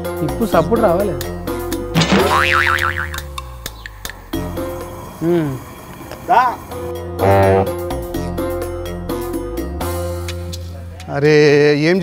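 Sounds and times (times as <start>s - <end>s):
background music: 0.0s - 12.0s
comic wobbling tone sweep: 2.2s - 3.4s.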